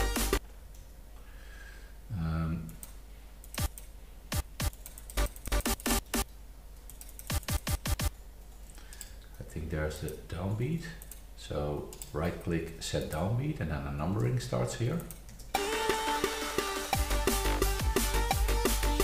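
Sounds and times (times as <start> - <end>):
man speaking low: 2.1 - 2.7
mouse and keyboard clicking: 6.2 - 7.6.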